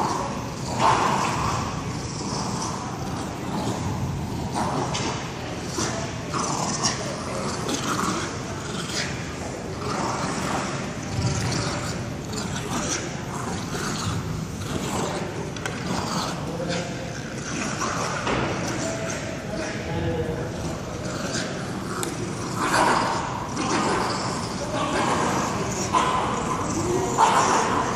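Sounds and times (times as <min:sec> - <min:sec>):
dogs growling in play: 0:00.0 - 0:27.9.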